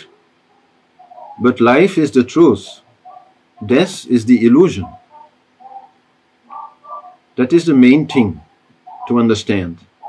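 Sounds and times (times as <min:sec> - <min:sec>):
faint bird chirps: 0:00.0 - 0:01.6, 0:02.7 - 0:03.8, 0:04.6 - 0:07.3, 0:08.3 - 0:09.2.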